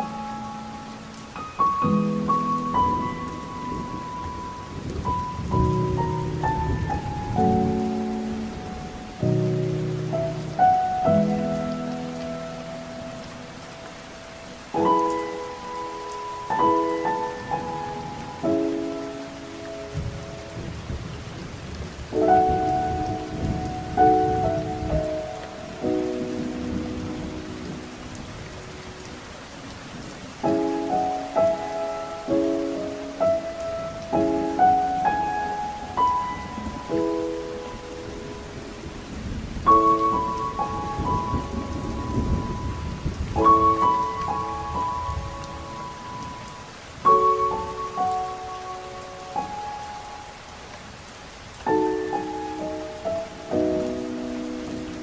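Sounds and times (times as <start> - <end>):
solo piano melody: 0.0 - 55.0
steady rain: 0.0 - 55.0
low rumbles of thunder: 38.5 - 45.9.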